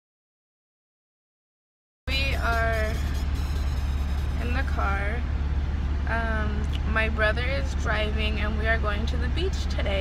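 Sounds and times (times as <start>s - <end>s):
woman speaking: 2.1s - 3.1s, 4.4s - 5.3s, 6.1s - 10.0s
low rumble inside car: 2.1s - 10.0s.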